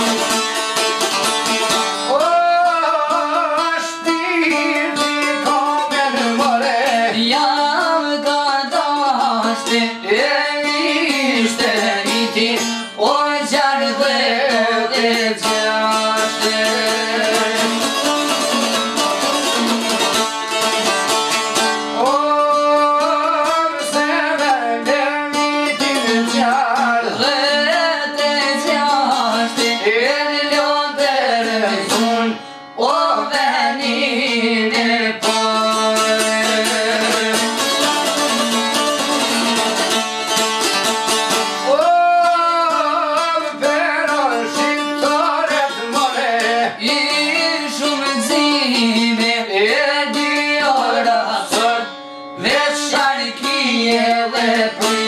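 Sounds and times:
plucked lutes: 0:00.0 - 0:55.0
person singing ornamented melody: 0:02.1 - 0:18.4, 0:21.9 - 0:38.4, 0:41.6 - 0:55.0.

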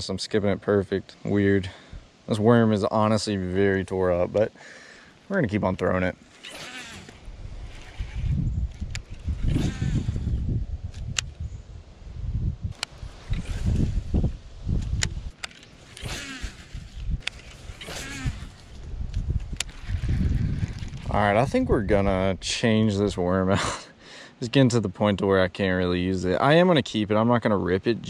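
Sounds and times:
microphone handling noise: 0:05.4 - 0:22.3
fishing reel clicks: 0:06.3 - 0:10.2, 0:15.0 - 0:18.6, 0:19.4 - 0:21.1
wind rumble: 0:07.0 - 0:23.3.

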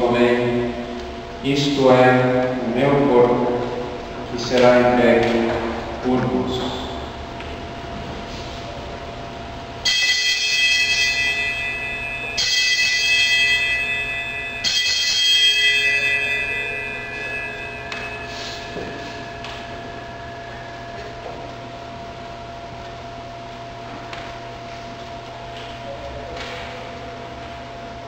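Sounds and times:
altar bells ringing: 0:09.8 - 0:23.2.

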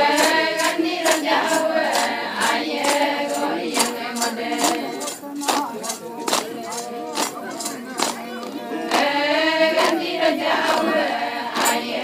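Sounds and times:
women singing: 0:00.0 - 0:05.2, 0:06.3 - 0:12.0.

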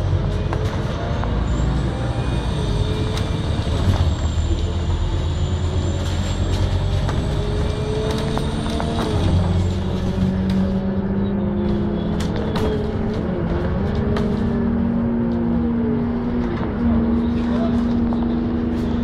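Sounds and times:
bus engine rumble: 0:00.0 - 0:19.0
drivetrain whine: 0:00.0 - 0:19.0.

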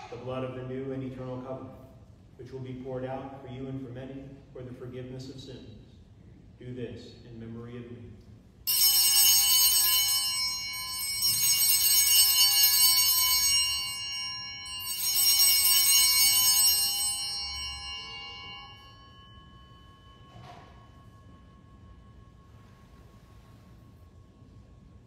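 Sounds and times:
altar bells jangling: 0:08.7 - 0:25.0.

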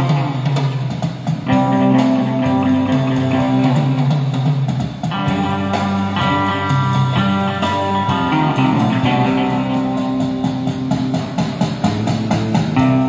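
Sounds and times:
electric guitar notes and chords: 0:00.0 - 0:13.0.

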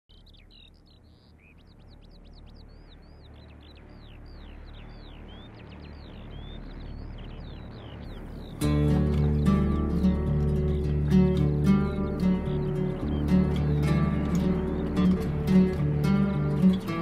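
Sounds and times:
birds chirping: 0:00.0 - 0:17.0.

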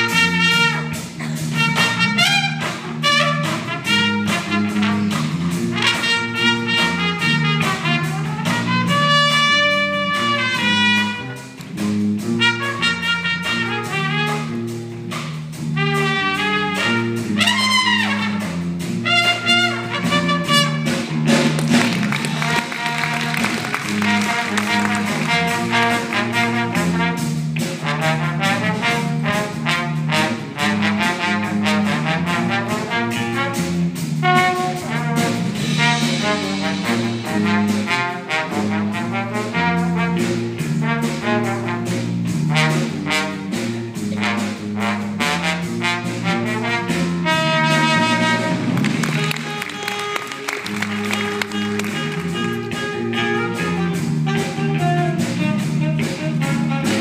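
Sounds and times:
trombone solo: 0:00.0 - 0:11.6, 0:12.2 - 0:14.9, 0:15.6 - 0:57.0
jazz big band playing: 0:00.0 - 0:57.0.

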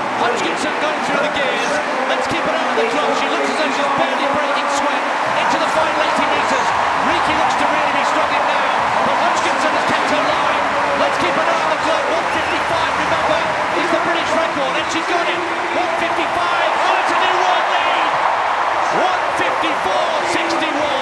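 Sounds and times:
stadium crowd cheering: 0:00.0 - 0:21.0.

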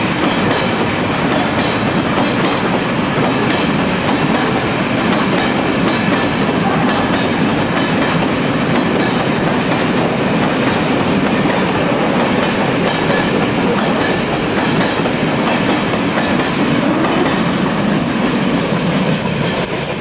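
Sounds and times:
clickety-clack over rail joints: 0:00.0 - 0:20.0
train wheels rumbling on rail: 0:00.0 - 0:20.0.

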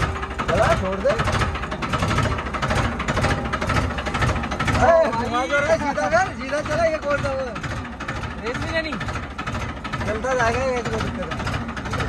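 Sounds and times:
tractor engine running: 0:00.0 - 0:12.0.

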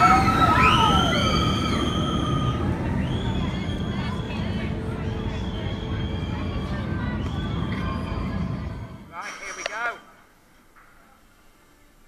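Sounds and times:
roller coaster rumbling on track: 0:00.0 - 0:09.2.

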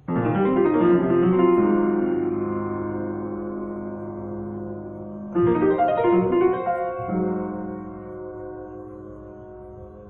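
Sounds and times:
blues piano chords: 0:00.0 - 0:10.0.

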